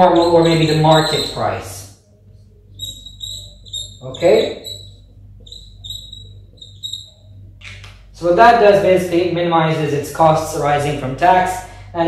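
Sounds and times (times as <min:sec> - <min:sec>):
marker squeaking on whiteboard: 0:00.0 - 0:08.1.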